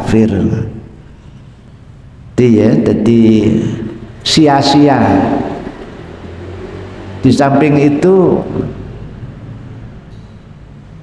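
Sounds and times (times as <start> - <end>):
man talking: 0.0 - 0.9, 2.4 - 5.7, 7.2 - 8.8
steady low hum: 0.0 - 11.0.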